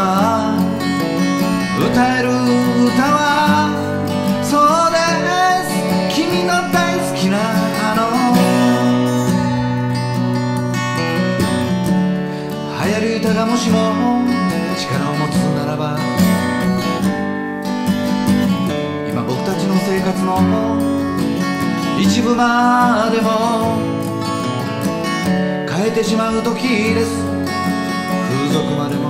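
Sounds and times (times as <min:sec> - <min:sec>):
acoustic guitar strumming chords: 0:00.0 - 0:29.0.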